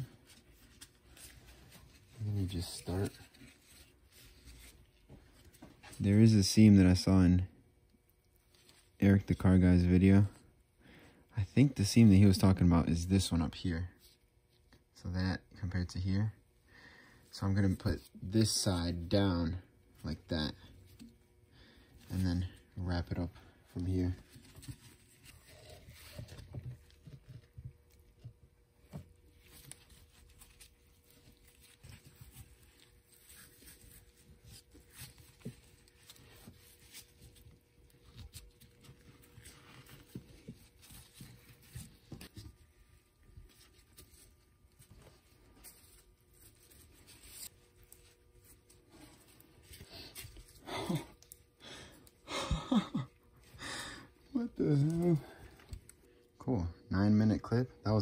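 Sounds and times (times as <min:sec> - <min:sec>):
fabric rustling and scraping on metal: 0:00.0 - 0:06.1.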